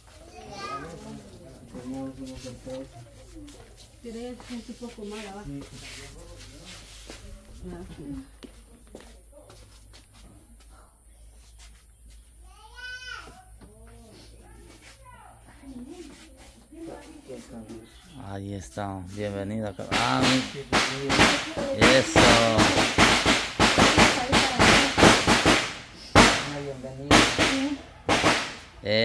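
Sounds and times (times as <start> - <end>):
people talking low: 0.0 - 11.3, 13.8 - 28.1.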